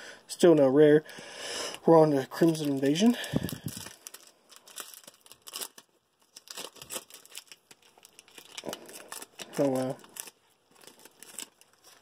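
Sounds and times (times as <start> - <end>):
foil wrapper ripping and crinkling: 2.2 - 12.0.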